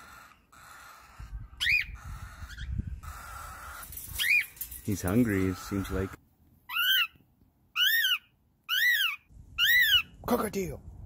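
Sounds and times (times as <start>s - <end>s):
cockatiel chirping: 7.8s - 10.1s.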